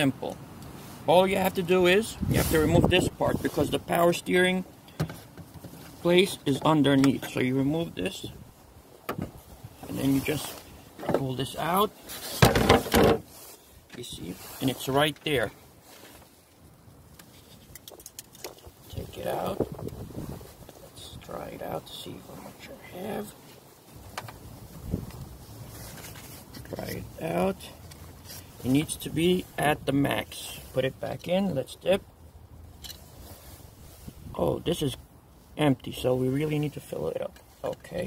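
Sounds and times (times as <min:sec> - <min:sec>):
faint handling noise: 0:00.0 - 0:31.7, 0:32.7 - 0:38.0.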